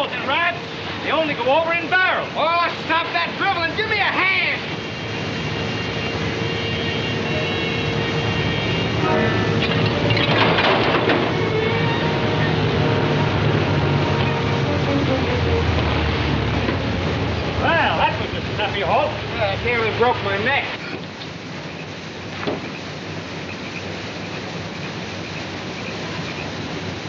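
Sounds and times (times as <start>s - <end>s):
waterfall roaring: 0.0s - 27.0s
sustained tones: 5.0s - 10.3s, 11.0s - 19.7s.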